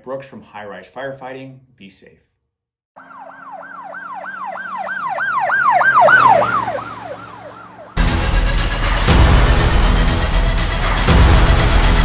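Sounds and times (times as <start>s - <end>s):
emergency siren yelping: 3.0s - 8.0s.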